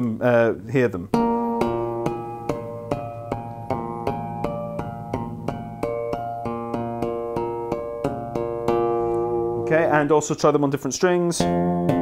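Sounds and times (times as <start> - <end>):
fingers tapping bass string: 1.1 - 10.1, 11.3 - 12.0
bell-like bass harmonics: 1.2 - 10.0
low sustained bass note: 1.2 - 10.0.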